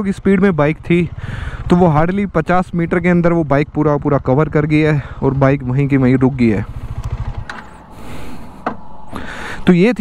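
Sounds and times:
motorcycle engine idling: 0.0 - 9.7.

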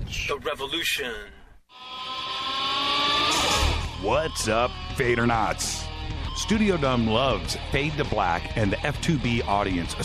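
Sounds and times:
buzzy rising tone: 1.7 - 8.1.

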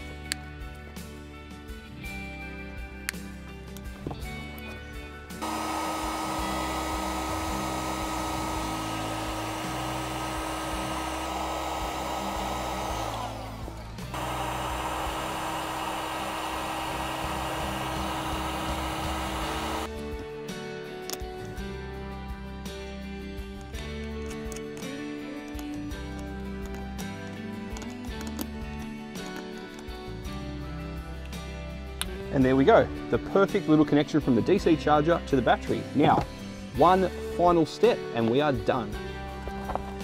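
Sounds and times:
background music: 0.0 - 40.0
heat gun running with whine: 5.4 - 19.9.

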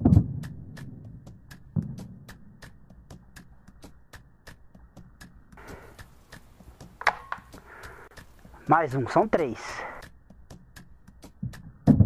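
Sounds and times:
faint regular ticking: 2.6 - 11.4.

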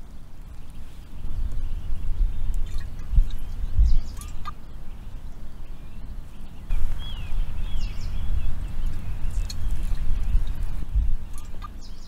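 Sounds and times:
faint bird chirps: 0.0 - 12.0
wind rumbling on microphone: 0.0 - 12.0.

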